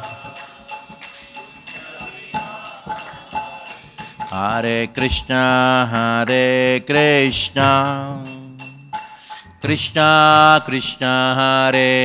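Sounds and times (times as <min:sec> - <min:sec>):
faint pitched accompaniment: 0:00.0 - 0:12.0
hand cymbals ringing strikes: 0:00.0 - 0:12.0
person singing: 0:02.0 - 0:08.8, 0:09.6 - 0:12.0.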